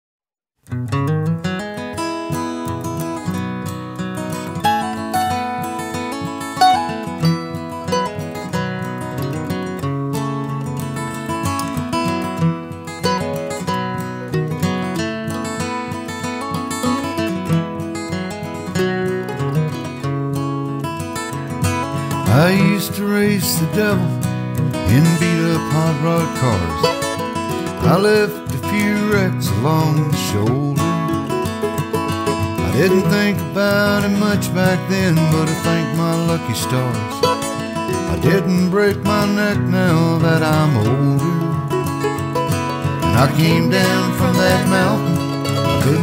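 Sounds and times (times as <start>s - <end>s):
acoustic guitar country music: 0.6s - 46.0s.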